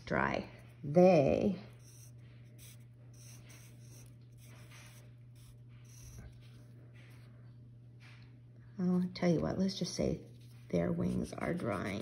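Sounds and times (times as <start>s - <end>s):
steady low hum: 0.0s - 12.0s
pencil scratching on paper: 1.7s - 6.6s, 10.3s - 12.0s.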